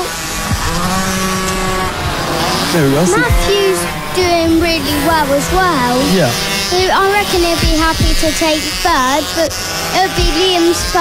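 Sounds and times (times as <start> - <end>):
minibike engines racing past: 0.0 - 11.0.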